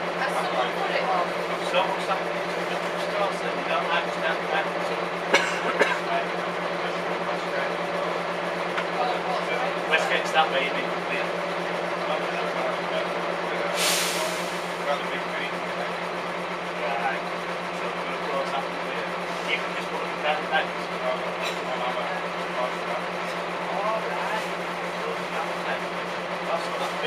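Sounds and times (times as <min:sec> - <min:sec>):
bus engine drone: 0:00.0 - 0:27.0
compressed air hiss: 0:13.8 - 0:14.6.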